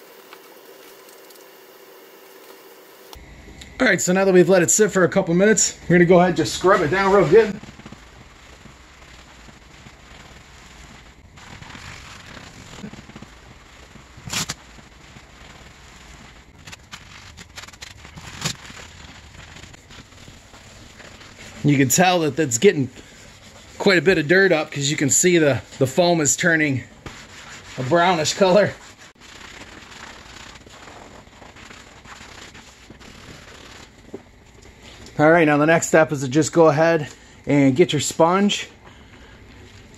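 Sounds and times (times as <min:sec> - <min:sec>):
scrubbing pad on wet vinyl: 0:03.8 - 0:35.3.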